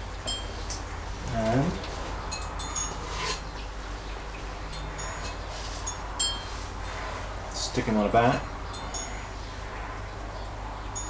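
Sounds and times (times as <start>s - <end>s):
steady low hum: 0.0s - 11.0s
metallic chime tinkling: 2.3s - 3.4s, 4.7s - 7.0s, 8.2s - 9.3s.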